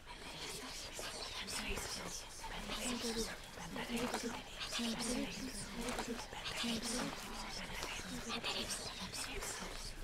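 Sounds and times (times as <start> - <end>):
voices whispering and murmuring: 0.0 - 10.0.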